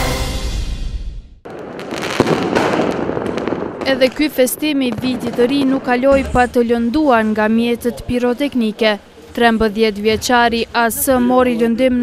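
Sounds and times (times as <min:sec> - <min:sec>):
firework bang: 0:01.5 - 0:06.5
fireworks crackling and popping: 0:01.5 - 0:10.4
person speaking: 0:03.9 - 0:12.0.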